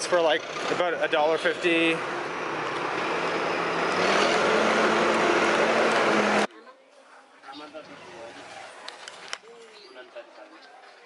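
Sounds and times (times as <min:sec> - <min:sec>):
diesel engine running: 0:00.0 - 0:06.5.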